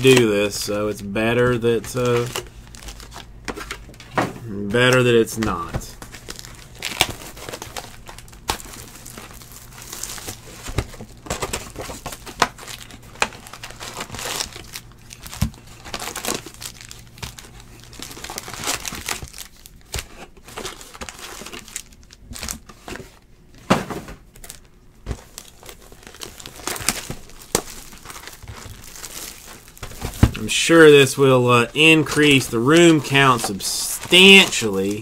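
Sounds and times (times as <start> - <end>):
foil wrappers crinkling and tearing: 0.0 - 23.2, 24.3 - 35.0.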